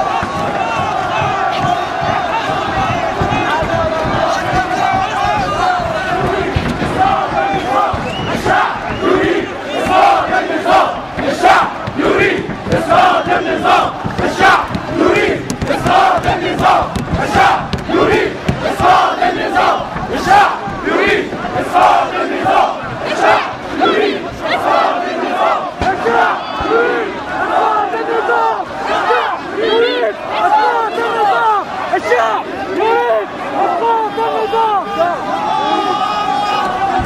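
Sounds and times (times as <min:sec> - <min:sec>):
crowd chanting: 0:00.0 - 0:37.0.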